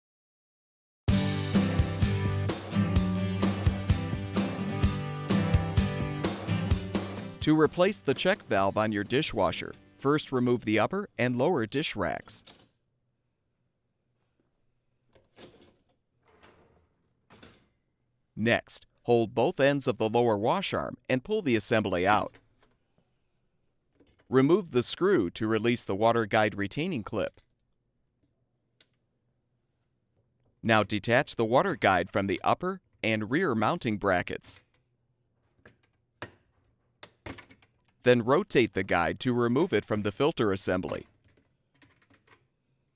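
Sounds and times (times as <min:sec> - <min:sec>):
plastic part thunk: 0:35.6 - 0:37.8.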